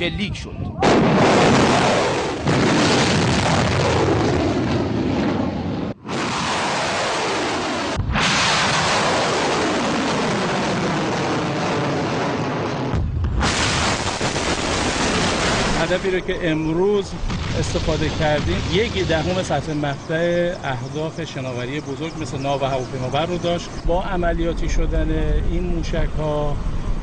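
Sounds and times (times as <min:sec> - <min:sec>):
explosion: 0:00.8 - 0:20.0
rocket motors roaring at launch: 0:00.8 - 0:20.1.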